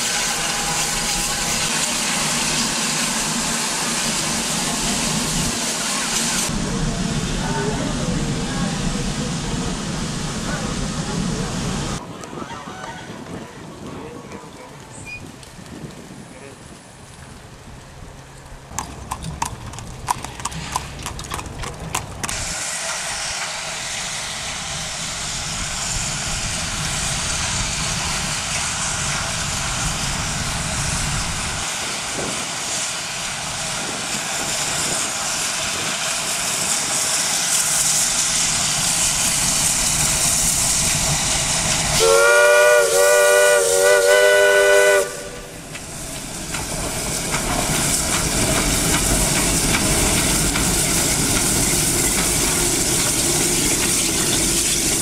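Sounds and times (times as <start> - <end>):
steam locomotive hissing: 0.0 - 12.1, 22.0 - 55.0.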